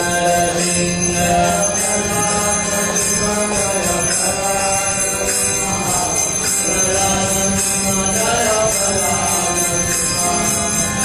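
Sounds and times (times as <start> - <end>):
chanted melody: 0.0 - 11.0
held drone: 0.0 - 11.0
small bells jingling: 0.0 - 11.0.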